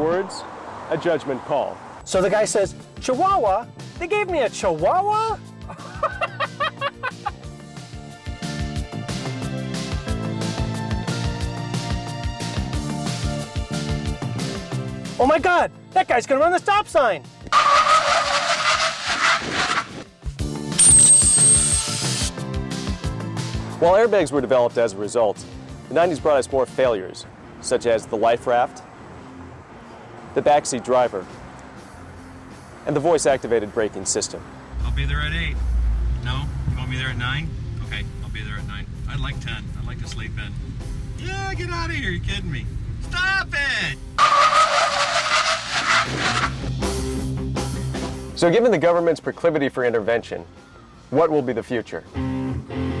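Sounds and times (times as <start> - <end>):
car tyres screeching: 0.0 - 2.3, 17.5 - 20.2, 20.8 - 22.2, 33.7 - 39.0, 43.9 - 46.8
tyre screech: 17.5 - 20.1, 20.8 - 22.2, 44.2 - 46.6
high ringing tone: 20.8 - 21.9.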